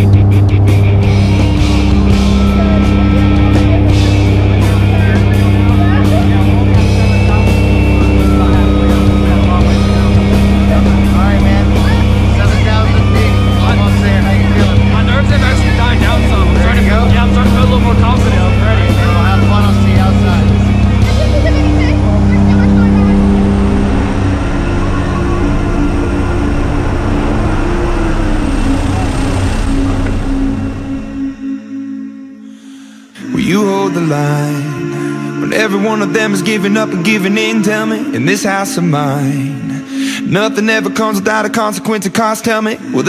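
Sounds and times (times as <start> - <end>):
voices: 0.0 - 31.9, 32.8 - 43.0
aircraft engine drone: 0.0 - 33.4
music: 0.0 - 43.0.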